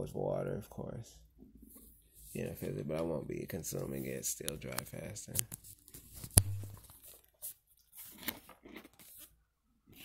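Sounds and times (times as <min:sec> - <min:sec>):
phone microphone handling noise: 0:04.7 - 0:06.9.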